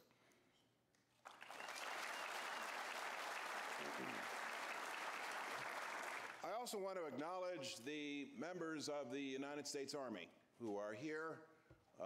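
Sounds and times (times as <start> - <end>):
audience applauding: 1.2 - 6.5.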